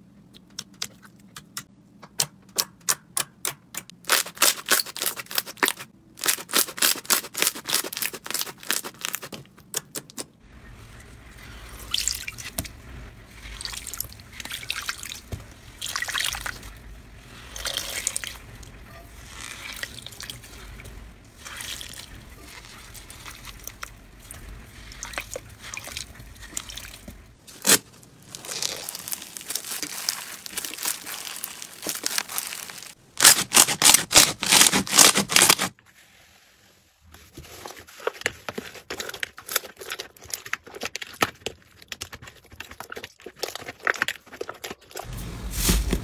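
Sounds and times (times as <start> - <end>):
crunchy slime squishes: 4.0 - 35.7, 37.3 - 46.0
wet foam crackling when squeezed: 19.2 - 35.7.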